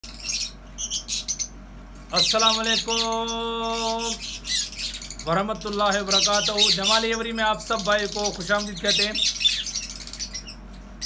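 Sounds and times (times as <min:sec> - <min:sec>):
lovebirds chirping: 0:00.0 - 0:10.7.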